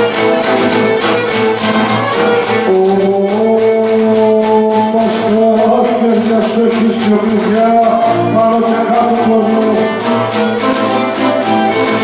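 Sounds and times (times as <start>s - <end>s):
bowed lyra melody: 0.0s - 3.8s, 8.0s - 12.0s
strummed lute: 0.0s - 12.0s.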